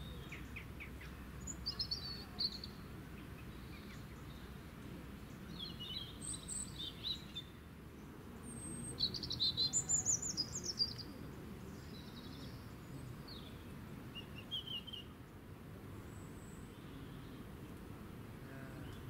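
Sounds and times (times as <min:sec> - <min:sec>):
songbirds chirping: 0:00.0 - 0:19.0.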